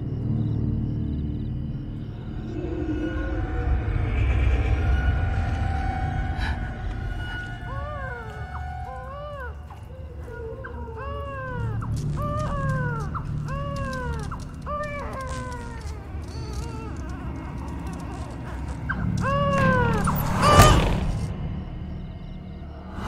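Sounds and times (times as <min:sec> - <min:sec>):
animal mewing cries: 0:07.2 - 0:21.3.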